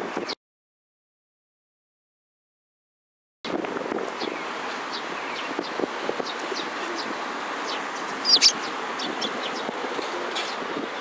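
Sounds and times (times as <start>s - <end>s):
sparrows chirping: 4.2s - 10.8s.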